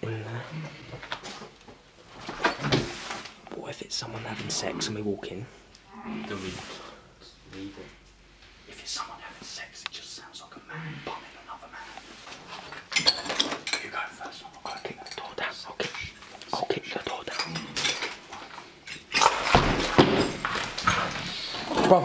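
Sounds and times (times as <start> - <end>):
rustling and scraping: 0.6 - 4.9, 6.0 - 9.5, 11.0 - 22.0.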